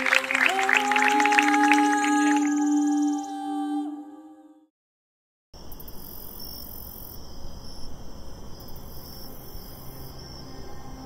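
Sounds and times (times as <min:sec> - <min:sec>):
crickets chirping: 0:05.6 - 0:11.0.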